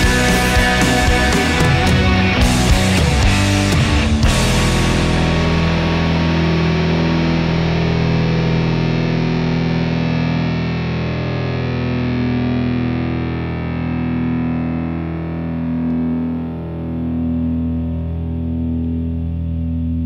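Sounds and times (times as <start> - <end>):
distorted electric guitar chord: 0.0 - 20.0.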